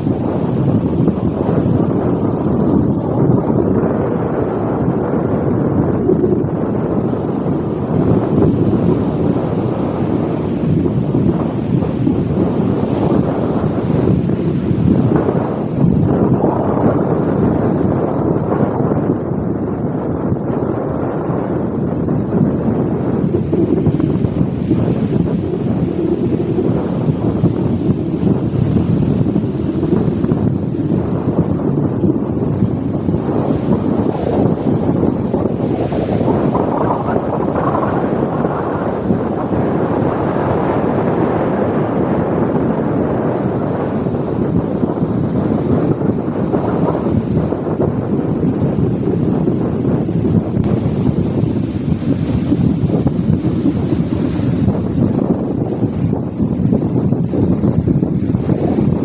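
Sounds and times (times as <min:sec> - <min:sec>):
breaking surf rushing: 0:00.0 - 0:59.0
wind buffeting microphone: 0:00.0 - 0:59.0.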